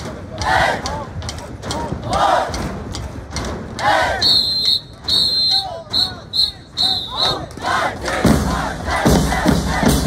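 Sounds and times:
whistle blast: 0:04.2 - 0:07.5.

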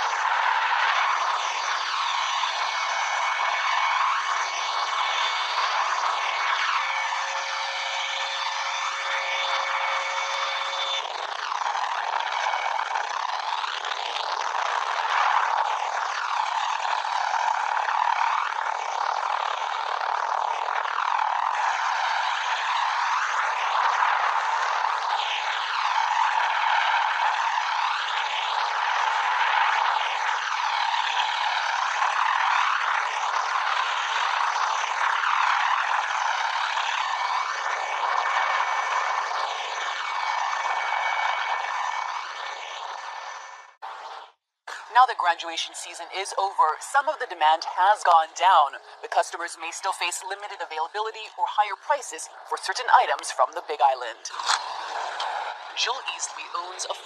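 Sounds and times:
helicopter rushing hiss: 0:00.0 - 0:57.0.

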